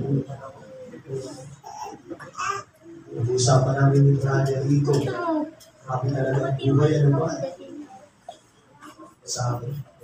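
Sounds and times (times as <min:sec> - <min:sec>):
man preaching: 0:00.0 - 0:01.4, 0:03.0 - 0:07.6, 0:09.2 - 0:10.0.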